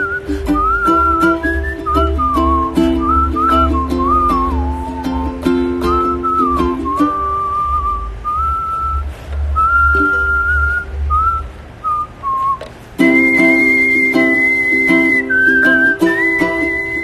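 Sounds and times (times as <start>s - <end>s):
man whistling a melody: 0.0s - 17.0s
strummed ukulele: 0.0s - 17.0s.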